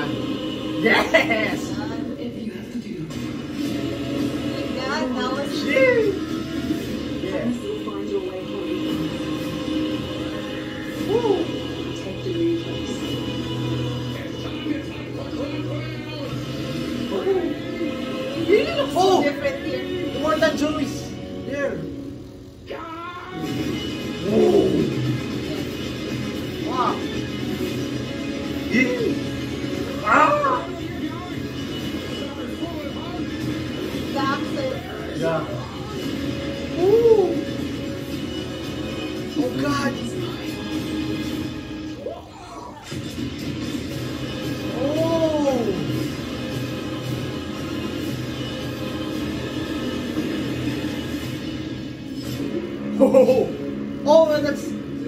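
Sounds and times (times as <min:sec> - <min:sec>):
film trailer music with low drone: 0:00.0 - 0:55.0.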